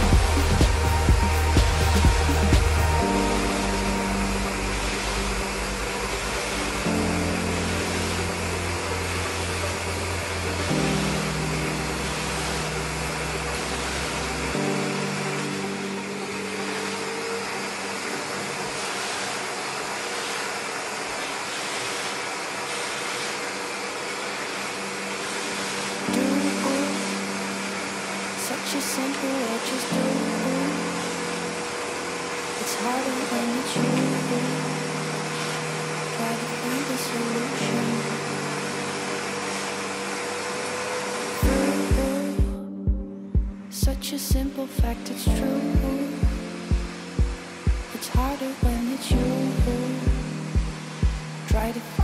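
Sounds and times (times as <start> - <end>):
pop song with bass line: 0.0 - 16.4, 26.1 - 27.6, 28.4 - 31.2, 32.6 - 35.1, 36.1 - 38.6, 41.4 - 52.0
vacuum cleaner rushing: 12.0 - 42.5.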